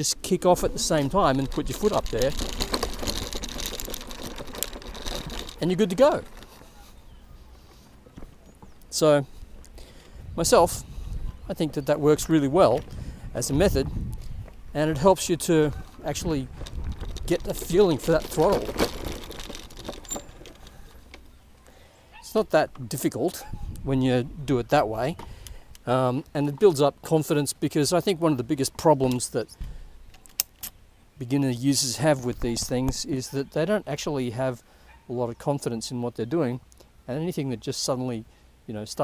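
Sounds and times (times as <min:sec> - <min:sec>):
electric scooter rattling over grass: 0:00.0 - 0:09.1, 0:14.7 - 0:21.4, 0:31.7 - 0:34.6.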